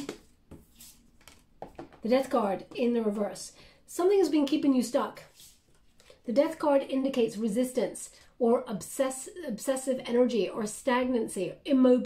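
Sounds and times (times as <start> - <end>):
card tapping on wooden table: 0.0 - 2.0.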